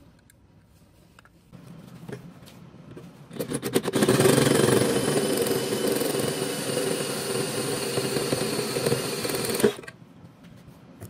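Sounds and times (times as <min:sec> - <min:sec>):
drill hole saw cutting steel: 0:03.8 - 0:09.9.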